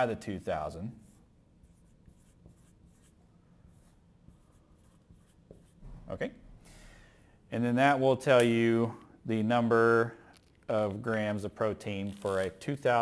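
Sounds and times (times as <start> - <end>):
marker scratching on whiteboard: 1.0 - 5.8.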